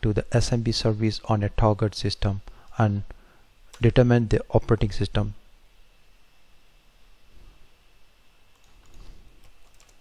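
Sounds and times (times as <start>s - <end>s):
typing on computer keyboard: 8.5s - 10.0s.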